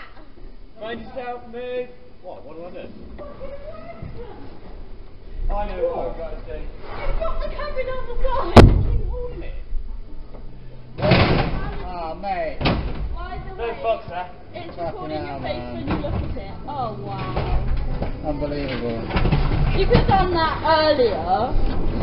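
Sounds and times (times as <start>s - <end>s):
indistinct voices: 2.8s - 22.0s.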